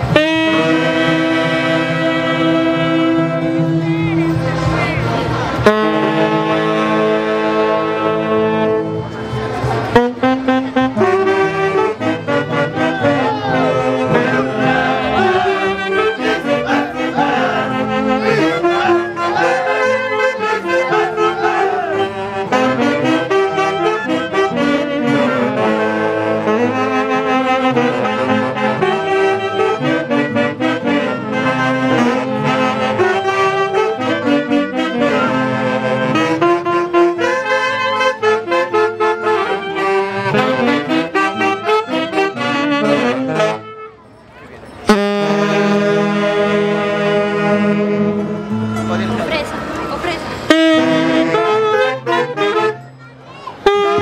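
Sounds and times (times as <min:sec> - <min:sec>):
live band with saxophones and brass: 0:00.0 - 0:54.0.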